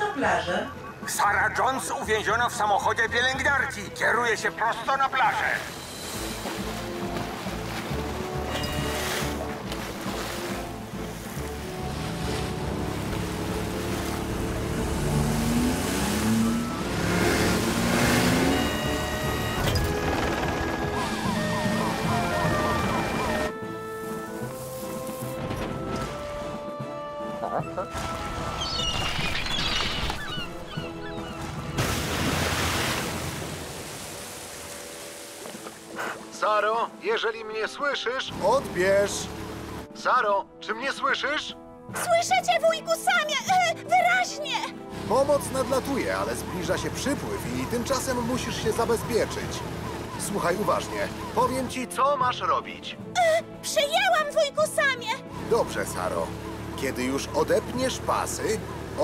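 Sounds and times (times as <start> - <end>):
background music score: 0.0 - 29.4, 30.1 - 59.0.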